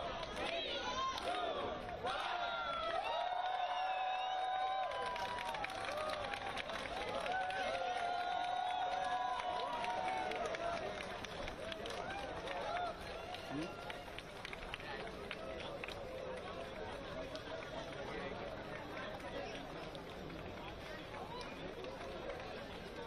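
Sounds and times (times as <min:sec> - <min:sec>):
crowd shouting and cheering: 0:00.0 - 0:14.4
chatter: 0:09.6 - 0:23.0.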